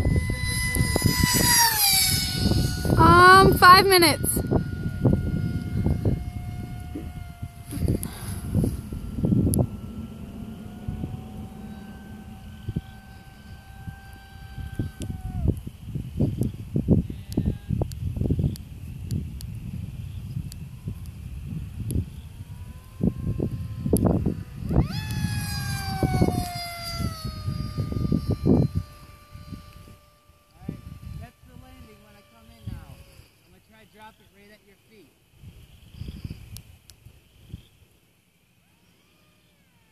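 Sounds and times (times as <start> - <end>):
wind buffeting microphone: 0.0 - 33.3
model aircraft motor whine: 0.0 - 39.9.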